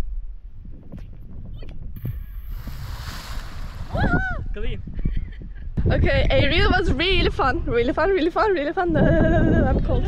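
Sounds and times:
wind buffeting microphone: 0.0s - 10.0s
splash into river water: 2.3s - 4.2s.

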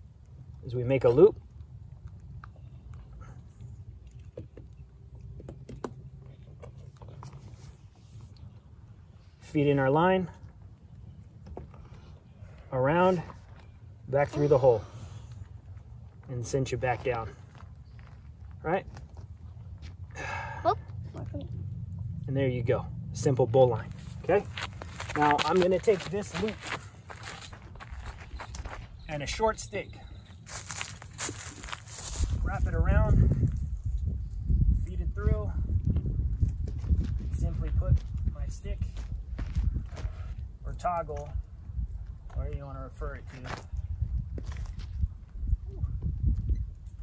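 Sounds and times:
footsteps on sandy dirt: 23.7s - 33.5s, 36.0s - 40.4s, 43.3s - 45.3s
wind rumble on microphone: 27.2s - 47.0s.

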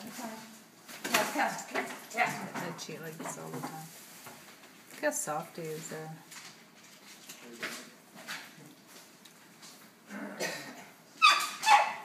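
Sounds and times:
dog barking: 11.2s - 12.0s.

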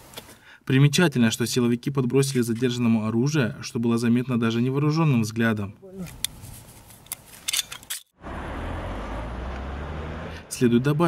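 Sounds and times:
road traffic engine drone: 8.2s - 11.0s.

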